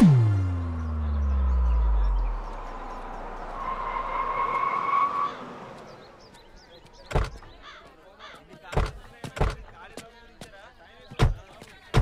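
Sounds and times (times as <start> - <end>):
deep falling tone: 0.0 - 3.6
brakes squealing: 0.7 - 6.5.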